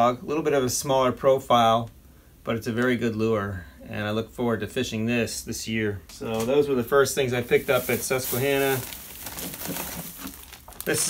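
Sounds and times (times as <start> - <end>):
plastic bag crinkling: 7.2 - 11.0.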